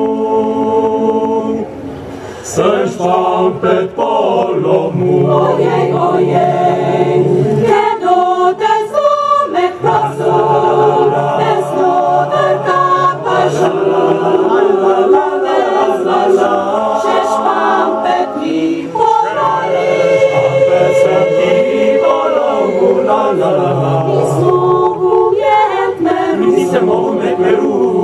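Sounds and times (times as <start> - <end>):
mixed choir singing in harmony: 0.0 - 28.0.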